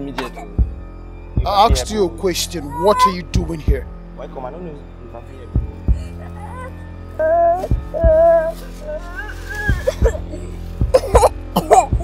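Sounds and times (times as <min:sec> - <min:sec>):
low background music: 0:00.0 - 0:12.0
person coughing: 0:00.1 - 0:00.7, 0:10.9 - 0:12.0.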